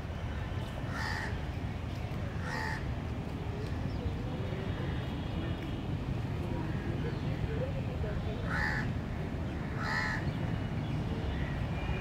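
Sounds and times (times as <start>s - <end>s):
crow cawing: 0.9s - 1.3s, 2.4s - 2.8s, 8.5s - 8.9s, 9.8s - 10.2s.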